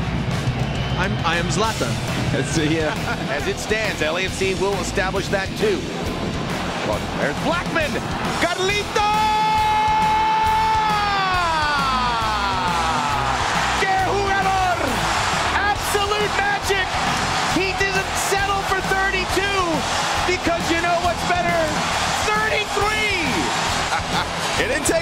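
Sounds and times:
stadium crowd cheering: 0.0s - 25.0s
commentator calling a goal: 7.1s - 23.5s
excited shouts and yells: 7.2s - 25.0s.

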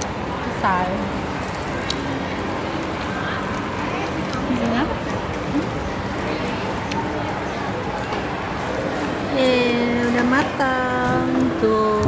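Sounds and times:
constant hum and hiss: 0.0s - 12.0s.

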